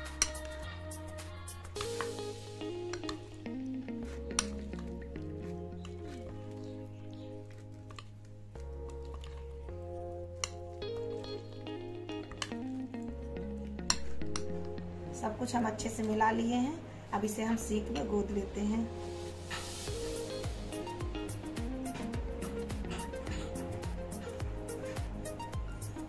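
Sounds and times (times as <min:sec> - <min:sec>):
background music with beat: 0:00.0 - 0:07.2, 0:19.0 - 0:26.0
soft squelching of mix: 0:03.0 - 0:11.2.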